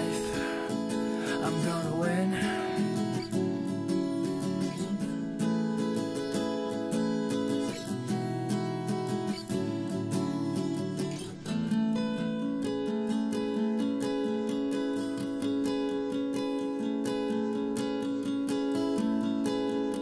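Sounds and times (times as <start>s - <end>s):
strummed acoustic guitar: 0.0s - 20.0s.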